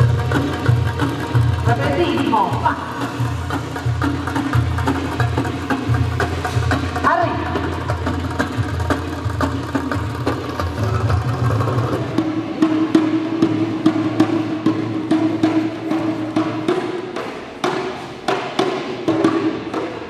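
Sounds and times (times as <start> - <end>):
hand drum strokes: 0.0 - 20.0.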